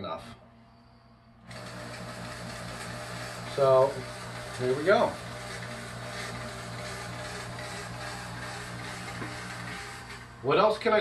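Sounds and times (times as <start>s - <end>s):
electric hum: 0.0s - 11.0s
fog machine hissing: 1.5s - 10.4s.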